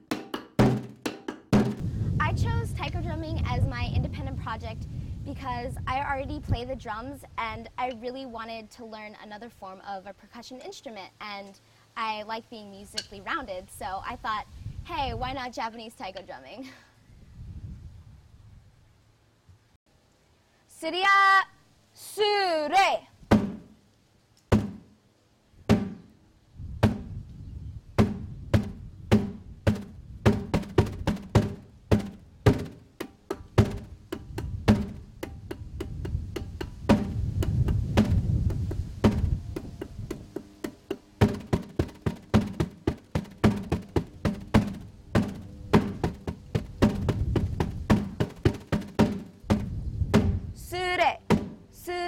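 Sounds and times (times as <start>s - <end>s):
drumming on tire drum: 0.0s - 1.8s, 23.3s - 23.7s, 24.5s - 24.9s, 25.7s - 26.0s, 26.8s - 27.1s, 28.0s - 50.4s, 51.3s - 51.7s.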